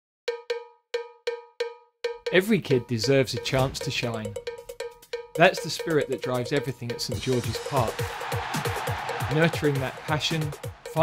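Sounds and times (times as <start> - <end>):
bright metallic percussion strikes: 0.3 - 11.0.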